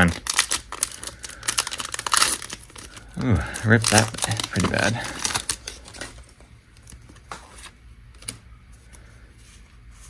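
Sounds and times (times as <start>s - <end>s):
wrapper crinkling: 0.0s - 7.1s.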